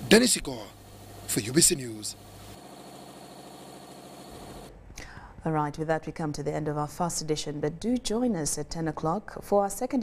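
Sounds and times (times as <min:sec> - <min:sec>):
factory machinery hum: 0:00.0 - 0:04.7
thin steady whine: 0:00.0 - 0:04.7.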